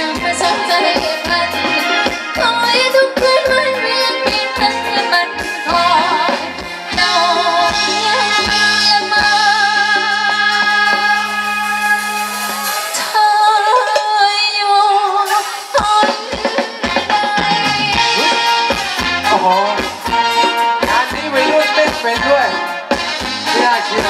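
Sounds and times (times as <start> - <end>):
band music with singing: 0.0 - 24.0.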